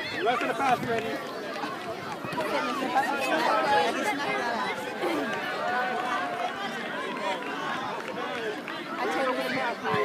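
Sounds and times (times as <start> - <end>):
voices chattering and calling out: 0.0 - 10.0.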